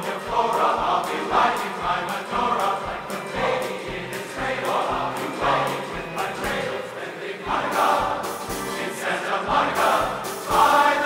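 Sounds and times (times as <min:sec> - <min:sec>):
band accompaniment: 0:00.0 - 0:11.0
men's chorus singing: 0:00.0 - 0:11.0
steady thumping beat: 0:00.0 - 0:11.0.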